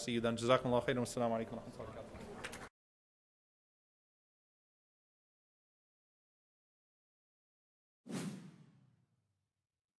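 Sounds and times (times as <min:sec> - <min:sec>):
whoosh sound effect: 0:08.1 - 0:08.9.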